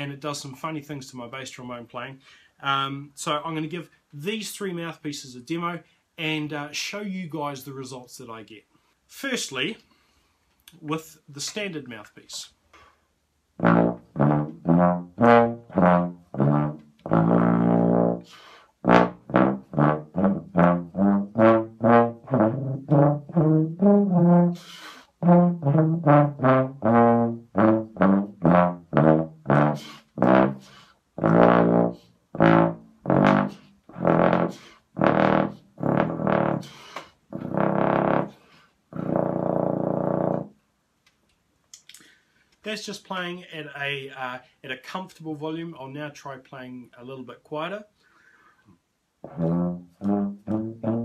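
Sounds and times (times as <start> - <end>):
contrabass trombone notes: 13.6 - 40.6, 49.2 - 51.0.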